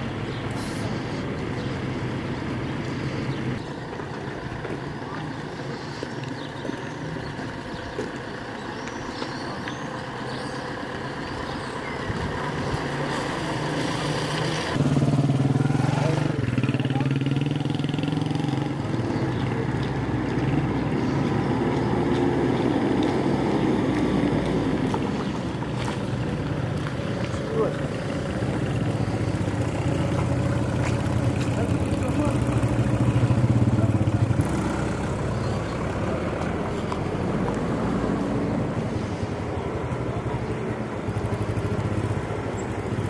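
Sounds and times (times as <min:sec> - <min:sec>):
street background noise: 0:00.0 - 0:43.0
motorcycle engine running: 0:14.8 - 0:23.4, 0:24.5 - 0:36.6, 0:39.6 - 0:43.0.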